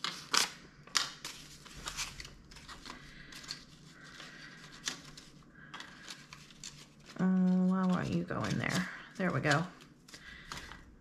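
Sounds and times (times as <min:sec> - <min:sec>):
banknotes rustling in plastic sleeves: 0:00.0 - 0:11.0.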